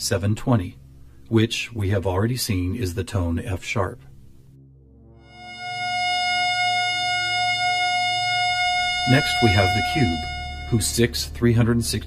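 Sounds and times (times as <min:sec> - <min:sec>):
low ambient music drone: 0:04.1 - 0:12.0
steady electronic tone: 0:04.7 - 0:11.4.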